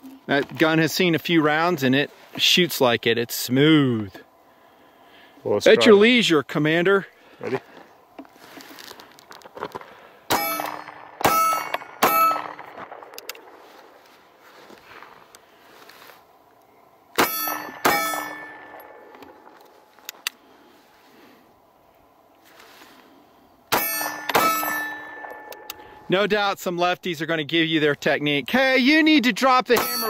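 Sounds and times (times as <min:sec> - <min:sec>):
metallic ring: 0:10.3 - 0:12.6, 0:17.2 - 0:19.6, 0:23.7 - 0:26.1, 0:29.8 - 0:30.0
pistol shots: 0:10.3 - 0:13.6, 0:17.2 - 0:19.0.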